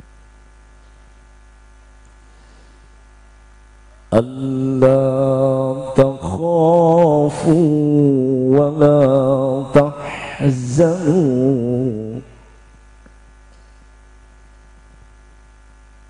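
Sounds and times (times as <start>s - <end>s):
steady low hum: 0.0s - 16.0s
man reciting melodically: 4.1s - 12.5s.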